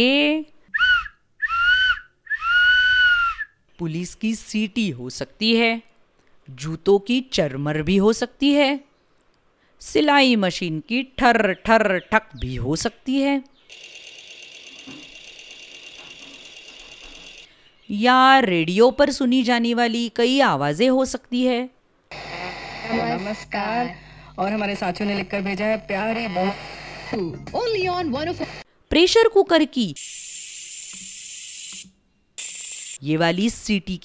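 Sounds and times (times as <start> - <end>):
sewing machine clattering: 13.7 - 17.5.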